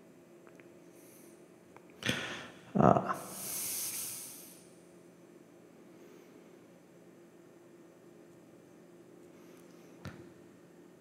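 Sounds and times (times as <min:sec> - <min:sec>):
person breathing close to microphone: 0:02.0 - 0:04.6.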